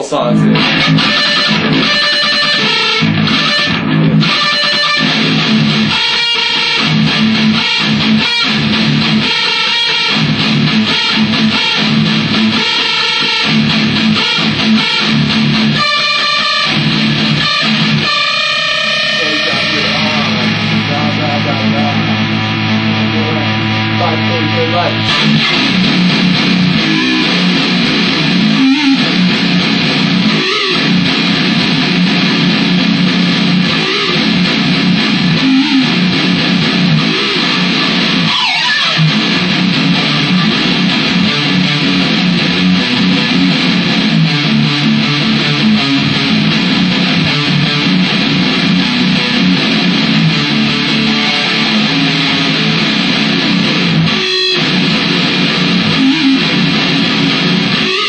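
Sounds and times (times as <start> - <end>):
amplified electric guitar: 0.0 - 58.0.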